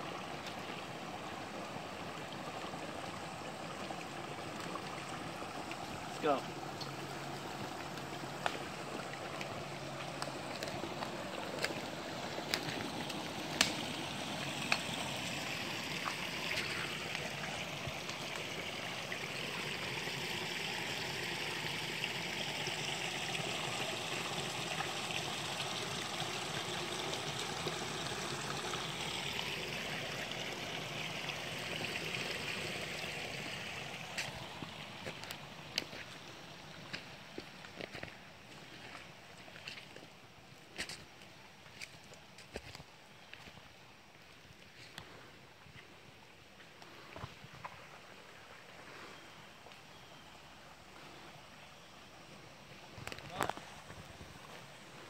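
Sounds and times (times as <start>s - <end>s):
creek water trickling: 0.0s - 55.0s.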